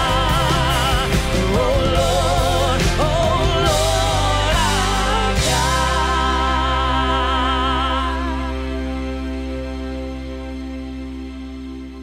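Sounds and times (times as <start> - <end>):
band sustained chord: 0.0 - 12.0.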